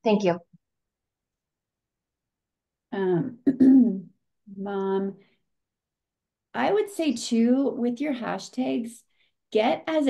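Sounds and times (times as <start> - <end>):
woman clearing her throat: 3.3 - 4.1.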